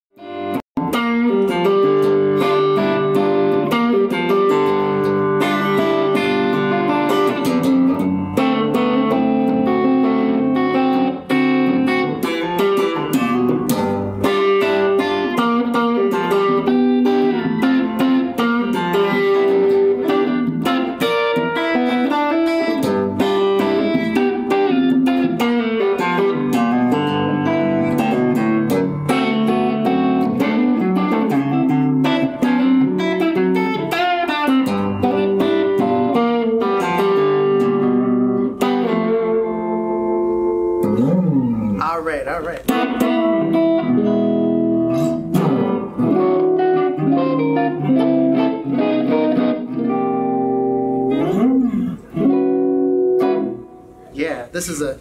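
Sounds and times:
electric guitar notes and chords: 0:00.2 - 0:55.0.

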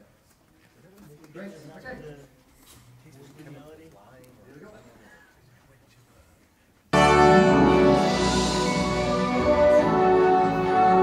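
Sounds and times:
orchestra holding sustained notes: 0:07.0 - 0:11.0.

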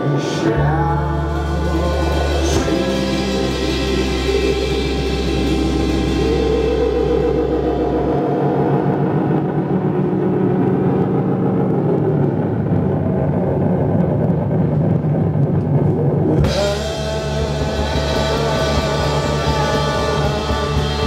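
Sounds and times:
psychedelic rock band playing: 0:00.0 - 0:10.4, 0:16.4 - 0:21.0
droning held tones: 0:00.0 - 0:21.0.

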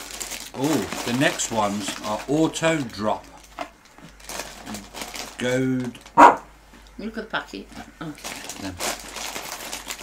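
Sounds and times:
snack packaging crinkling: 0:00.0 - 0:06.2, 0:08.0 - 0:10.0.

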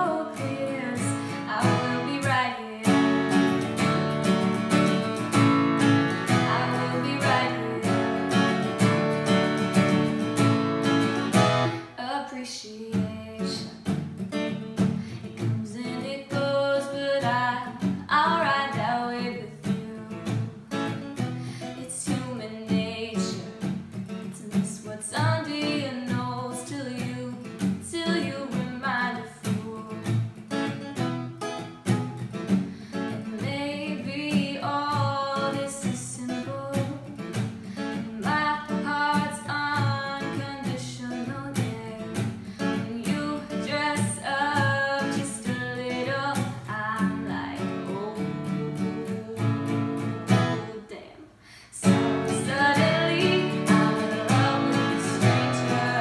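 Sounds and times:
acoustic guitar strumming: 0:00.0 - 0:12.0, 0:13.0 - 0:50.8, 0:51.8 - 0:56.0
girl singing pop song: 0:00.0 - 0:56.0.

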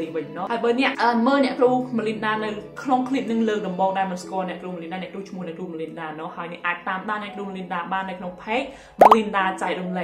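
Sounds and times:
bloop pop sound effect: 0:09.0 - 0:09.2.

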